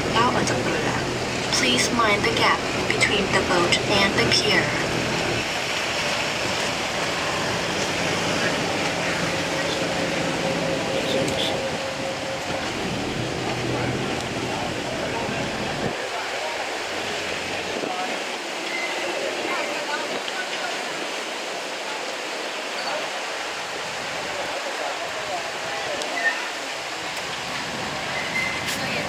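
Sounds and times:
boat engine rumble: 0:00.0 - 0:29.0
passenger chatter: 0:00.0 - 0:29.0
rushing river water: 0:00.0 - 0:29.0.

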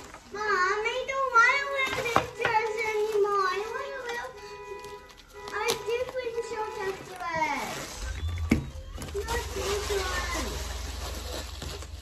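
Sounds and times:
plastic wrapping crackling: 0:00.0 - 0:12.0.

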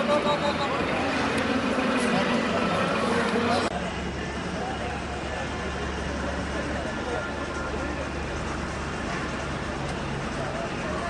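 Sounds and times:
indistinct talk: 0:00.0 - 0:11.0
low outdoor rumble: 0:00.0 - 0:11.0.

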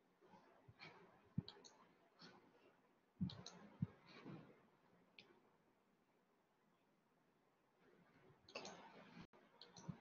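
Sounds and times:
faint clicks and soft knocks: 0:00.7 - 0:05.5, 0:07.8 - 0:10.0.

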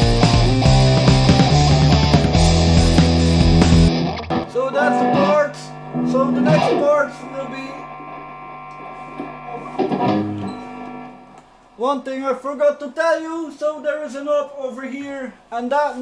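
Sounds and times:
drums and bass backing: 0:00.0 - 0:04.6
distorted electric guitar: 0:00.0 - 0:11.6.

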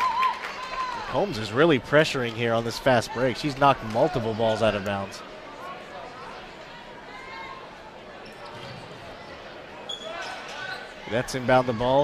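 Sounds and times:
murmur of voices: 0:00.6 - 0:12.0.

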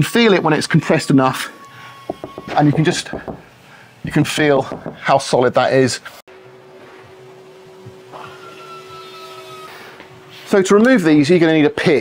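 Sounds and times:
steady hum: 0:05.7 - 0:12.0
high whine: 0:06.3 - 0:12.0.

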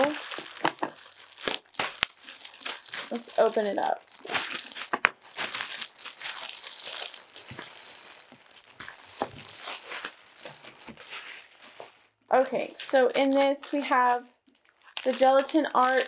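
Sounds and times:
plastic wrap crinkling and tearing: 0:00.0 - 0:16.0.

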